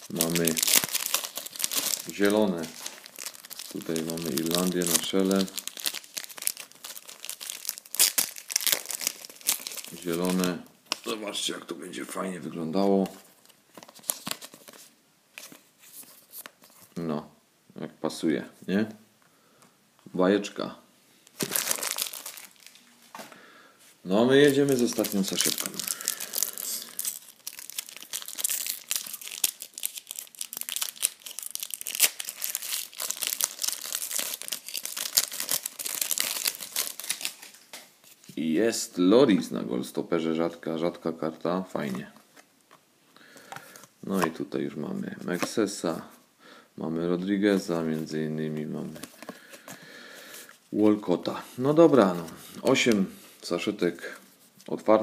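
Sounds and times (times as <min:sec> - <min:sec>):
plastic card sleeves crinkling: 0:00.0 - 0:11.2, 0:13.0 - 0:17.0, 0:21.3 - 0:22.9, 0:24.4 - 0:38.4, 0:47.2 - 0:50.6, 0:51.8 - 0:54.9.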